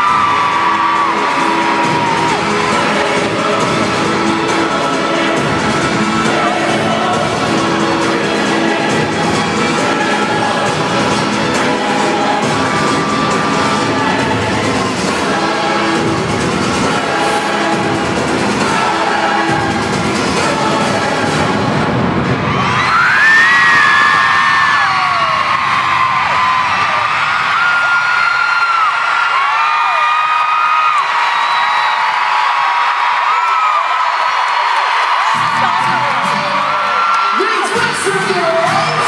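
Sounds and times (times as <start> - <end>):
crowd screaming and cheering: 0.0 - 39.0
loud live pop music: 0.0 - 39.0.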